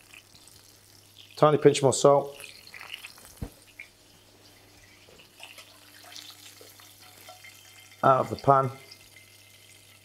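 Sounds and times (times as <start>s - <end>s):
fish fillet sizzling in a pan: 0.0s - 10.0s.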